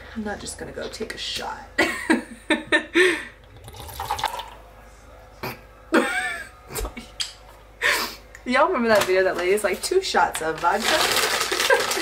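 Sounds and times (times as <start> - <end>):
woman laughing: 1.8 - 3.4, 5.9 - 7.1, 11.5 - 12.0
liquid pouring into a cup: 3.4 - 4.6.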